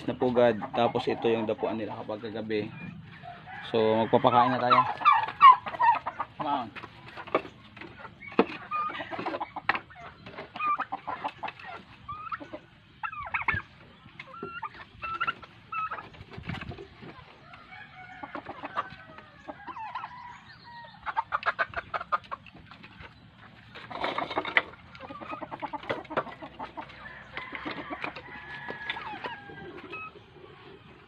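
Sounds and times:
chickens clucking and calling: 0:00.0 - 0:31.0.

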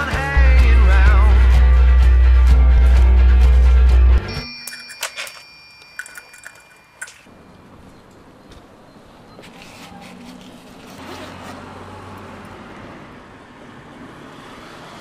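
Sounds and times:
street noise: 0:00.0 - 0:15.0
bicycle bell ringing: 0:04.3 - 0:07.5.

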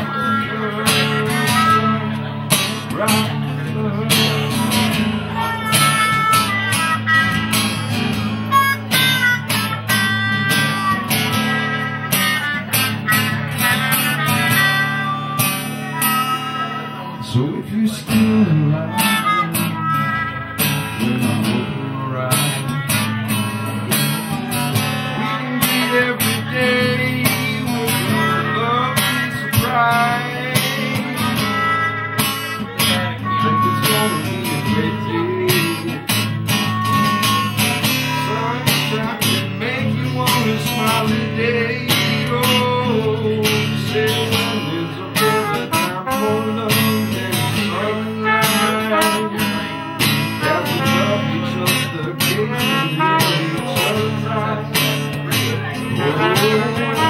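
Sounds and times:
strummed acoustic guitar: 0:00.0 - 0:57.0
trumpet melody: 0:44.6 - 0:54.7, 0:55.9 - 0:57.0.

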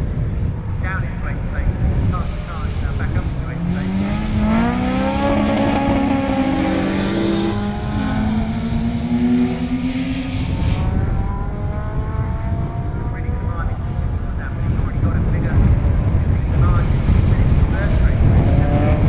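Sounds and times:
racing car engines revving: 0:00.4 - 0:19.0.

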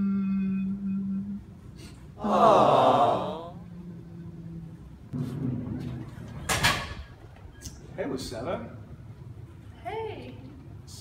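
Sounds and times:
person moaning in mock crying: 0:02.2 - 0:03.7.

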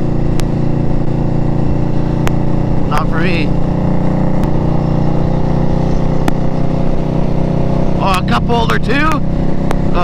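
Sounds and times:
motorcycle engine droning: 0:00.0 - 0:10.0.

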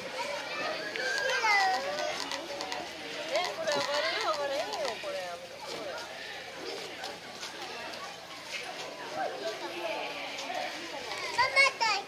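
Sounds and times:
young children's voices: 0:11.2 - 0:12.0.

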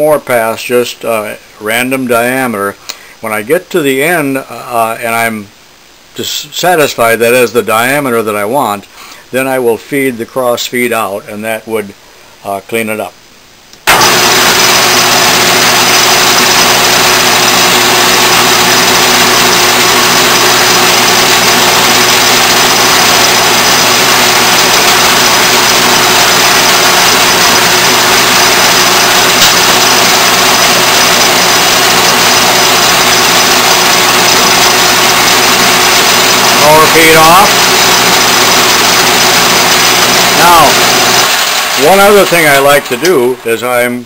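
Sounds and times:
metal lathe motor running: 0:13.9 - 0:43.4.

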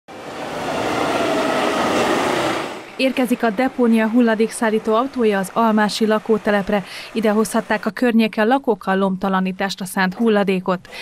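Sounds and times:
garbage truck driving past: 0:00.1 - 0:06.8.

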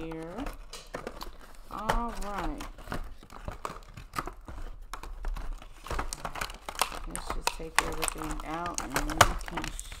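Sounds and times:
cardboard box rustling: 0:00.0 - 0:10.0
plastic packaging crinkling: 0:00.0 - 0:10.0.

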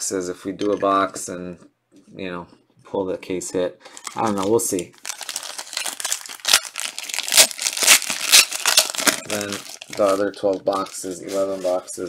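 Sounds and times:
foil wrapper tearing: 0:04.0 - 0:11.9
foil wrapper crinkling: 0:04.0 - 0:12.0.

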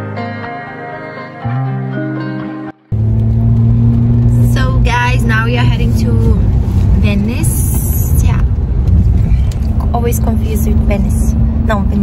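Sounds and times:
background music: 0:00.0 - 0:03.0
car engine and tyres from inside: 0:03.0 - 0:12.0.

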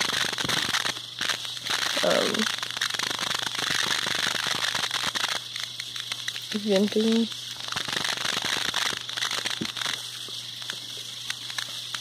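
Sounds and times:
crackling clicks: 0:00.0 - 0:12.0
steady hiss: 0:00.0 - 0:12.0.

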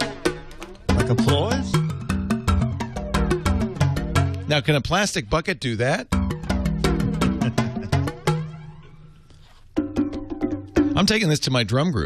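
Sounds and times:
electronic drum pad strikes: 0:00.0 - 0:04.5, 0:06.1 - 0:09.1, 0:09.8 - 0:11.2.

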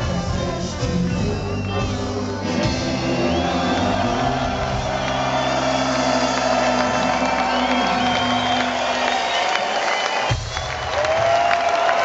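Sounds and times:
ska band holding chord: 0:00.0 - 0:11.2
crowd cheering and whooping: 0:02.4 - 0:12.0.

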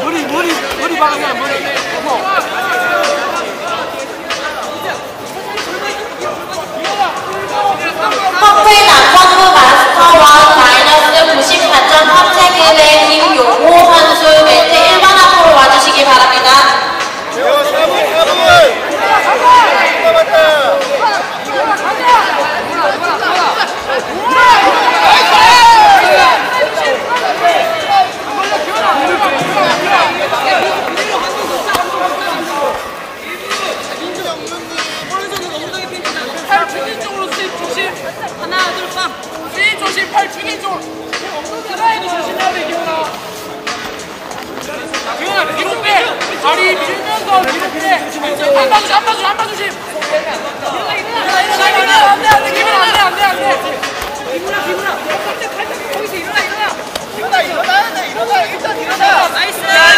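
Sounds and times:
crowd shouting and calling out: 0:00.0 - 0:59.9.

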